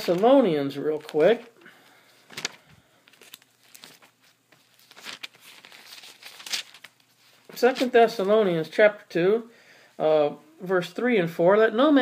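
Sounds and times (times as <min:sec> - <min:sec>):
paper pages turning: 0:00.0 - 0:01.6, 0:02.2 - 0:08.4.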